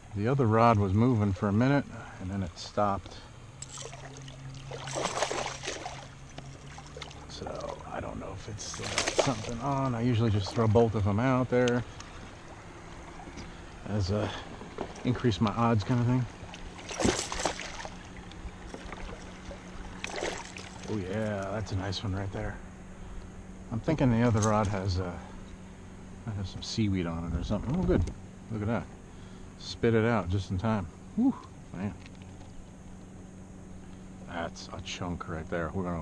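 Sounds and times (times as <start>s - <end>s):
electric trolling motor humming: 0.0s - 36.0s
fish splashing at water surface: 3.6s - 7.3s, 8.6s - 9.8s, 16.4s - 20.9s.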